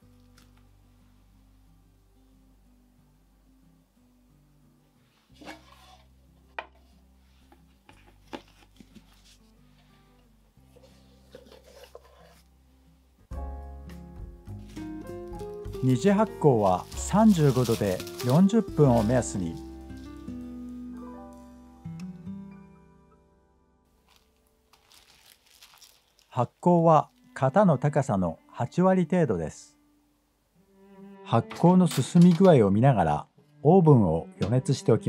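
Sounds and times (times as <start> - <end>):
quiet background music: 0.0 - 35.0
dough handling sounds: 10.6 - 12.5, 14.5 - 20.5, 24.0 - 27.3
plastic wrap crinkling: 14.6 - 20.8, 23.9 - 27.4.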